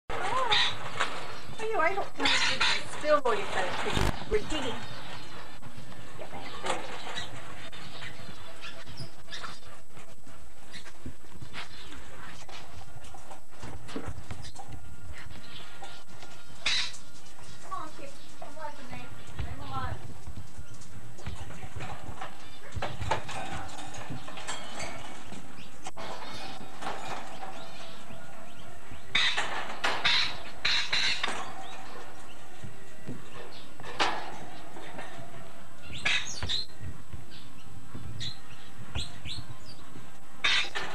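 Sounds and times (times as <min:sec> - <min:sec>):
wire cage knocks and rattles: 0:10.6 - 0:40.9.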